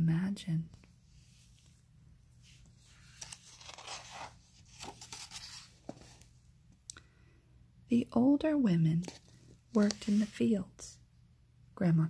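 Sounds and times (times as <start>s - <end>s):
woman speaking softly: 0.0s - 0.8s, 9.7s - 11.0s, 11.8s - 12.0s.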